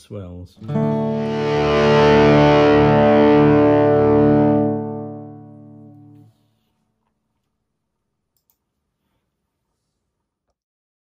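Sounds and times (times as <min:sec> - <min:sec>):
distorted electric guitar chord: 0:00.6 - 0:06.3.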